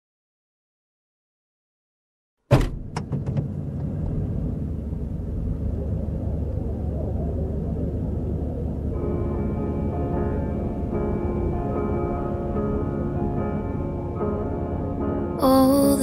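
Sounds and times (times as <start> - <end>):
sharp knock: 2.5 - 3.4
car rumble from inside: 2.5 - 9.4.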